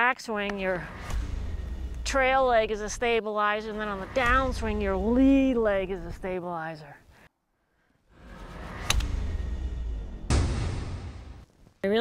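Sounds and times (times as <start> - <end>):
low rumble: 0.5 - 6.3, 8.1 - 11.5.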